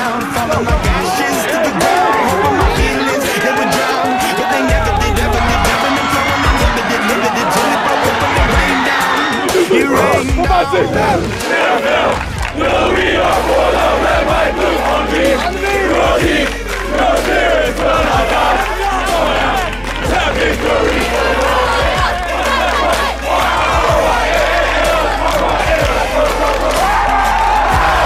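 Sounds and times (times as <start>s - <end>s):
group of men singing: 0.0s - 28.0s.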